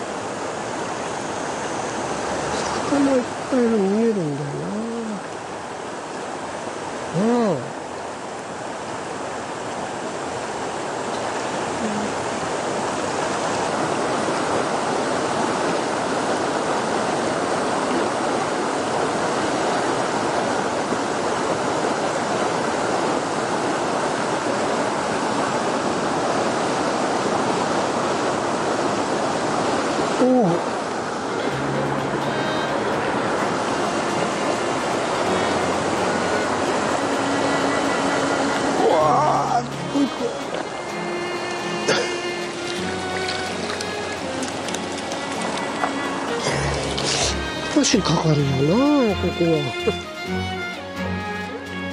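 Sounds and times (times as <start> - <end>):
river running over stones: 0.0 - 51.9
man humming: 4.3 - 5.2, 7.2 - 7.7, 11.8 - 12.2, 38.8 - 43.2, 46.3 - 47.4.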